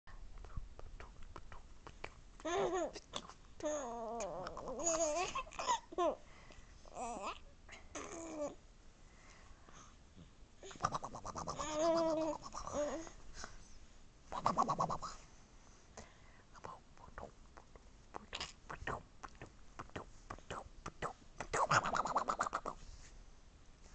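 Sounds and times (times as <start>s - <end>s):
faint whispering: 0.1s - 2.2s, 10.6s - 15.3s, 15.9s - 23.0s.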